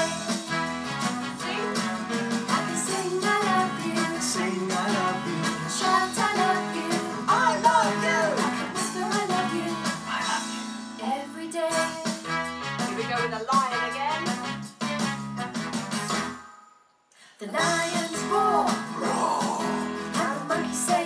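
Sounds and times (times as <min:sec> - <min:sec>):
children's song with singing: 0:01.4 - 0:12.2, 0:17.4 - 0:21.0.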